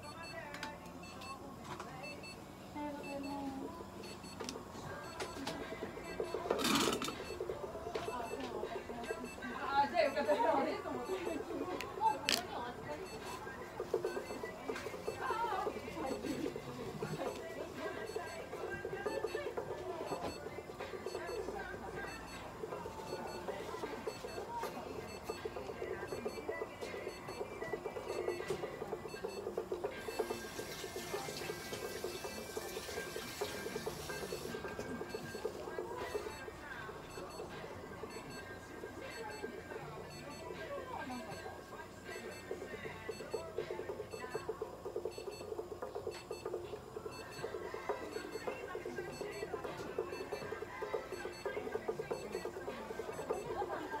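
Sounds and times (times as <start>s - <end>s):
rapid electronic beeping: 0.0s - 0.4s, 3.0s - 54.0s.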